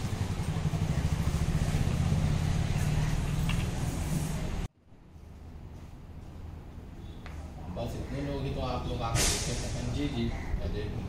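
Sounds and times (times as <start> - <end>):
vehicle engine running: 0.0 - 4.7.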